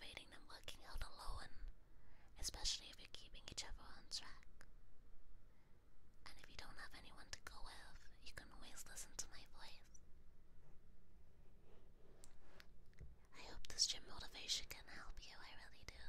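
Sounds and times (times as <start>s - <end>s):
woman whispering: 0.0s - 1.7s, 2.4s - 4.7s, 6.3s - 10.0s, 13.3s - 16.0s.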